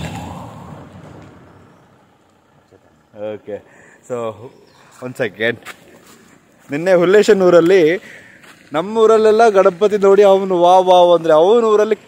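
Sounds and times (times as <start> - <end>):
car driving past: 0.0 - 3.7.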